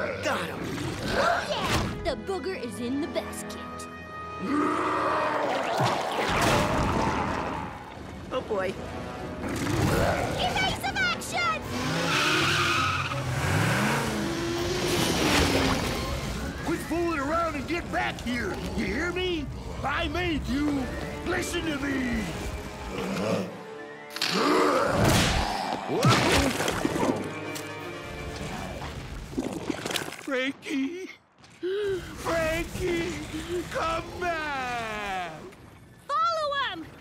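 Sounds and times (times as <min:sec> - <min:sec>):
background music: 0:00.0 - 0:29.5
tires screeching: 0:09.4 - 0:23.1.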